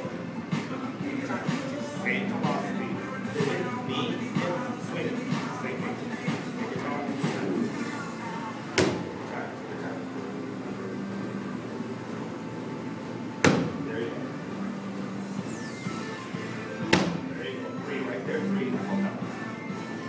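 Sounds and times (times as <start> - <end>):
background music: 0.0 - 9.8, 12.6 - 20.0
kicks smacking kick shield: 13.4 - 13.8.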